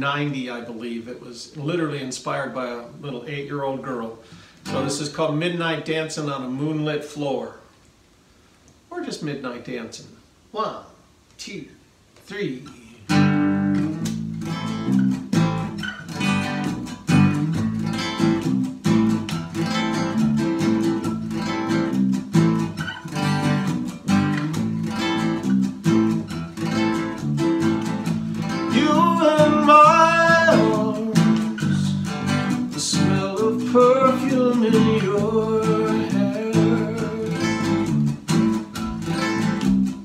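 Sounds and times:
acoustic guitar strumming: 4.3 - 5.5, 13.1 - 40.0
electric bass guitar: 4.7 - 5.0, 13.0 - 40.0
person singing: 4.7 - 5.0, 28.5 - 37.9.

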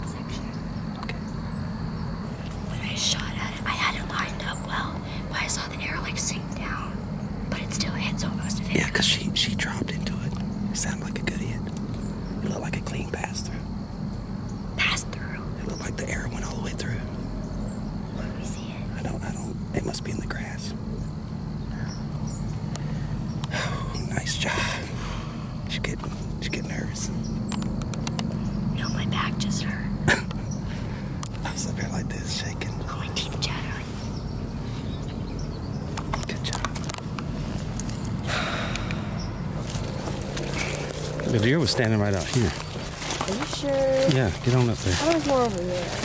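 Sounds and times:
people whispering: 0.0 - 1.3, 2.5 - 11.8, 12.4 - 13.7, 14.8 - 17.2, 18.1 - 20.8, 23.5 - 27.2, 28.8 - 30.2, 31.3 - 34.1, 36.1 - 36.9, 38.6 - 46.0
steady low hum: 0.0 - 46.0.

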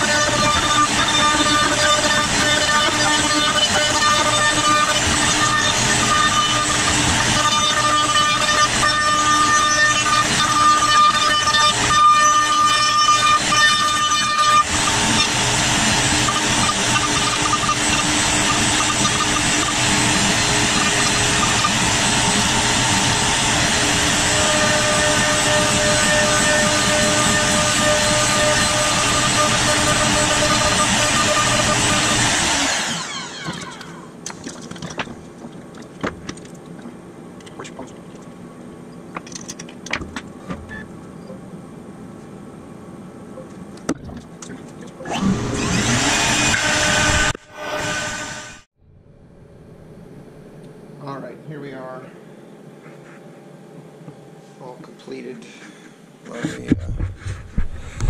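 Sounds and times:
cnc router spindle whine: 0.0 - 34.1, 45.0 - 48.7
router cutting wood: 0.0 - 34.1, 45.0 - 48.7.

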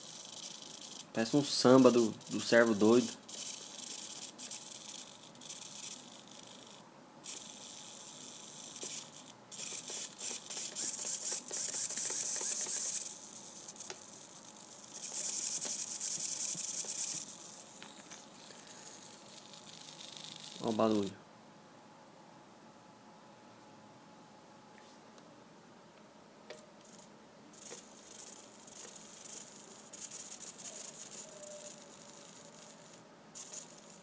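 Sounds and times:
servo motor gears chattering: 0.0 - 20.7.

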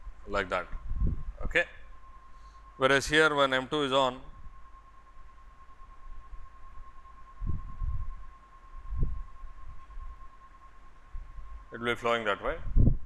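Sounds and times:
thin electrical whine: 0.0 - 13.0
dull low thumps: 0.7 - 1.5.

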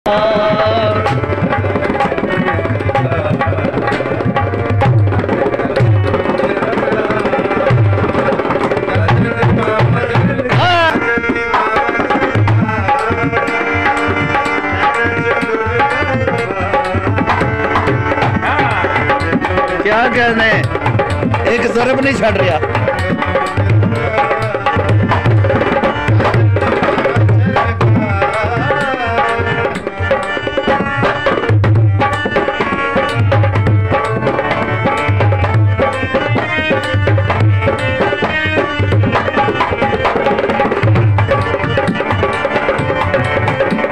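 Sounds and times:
barrel drum played by hand: 0.1 - 43.9.

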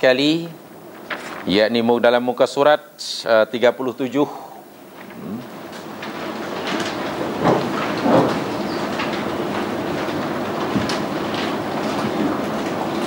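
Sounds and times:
book pages rustling: 1.0 - 1.6.

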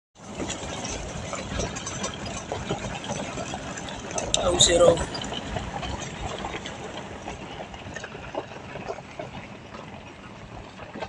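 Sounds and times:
vehicle body rattling: 0.2 - 10.1
vehicle engine running: 0.2 - 11.0.

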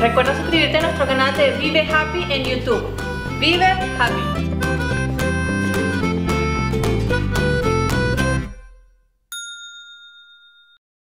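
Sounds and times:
bright bell-like ding: 9.3 - 10.8.

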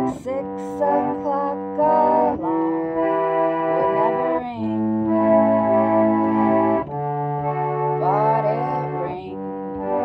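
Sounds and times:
pump organ chords: 0.0 - 10.0.

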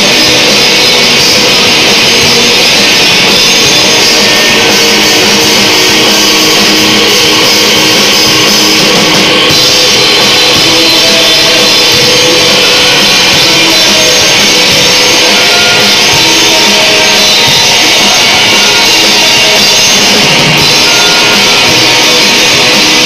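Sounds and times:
bass guitar: 0.0 - 23.0
drums: 0.0 - 23.0
electric guitars: 0.0 - 23.0.

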